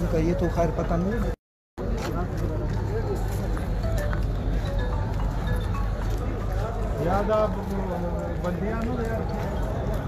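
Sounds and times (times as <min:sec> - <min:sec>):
street crowd noise: 0:00.0 - 0:10.0.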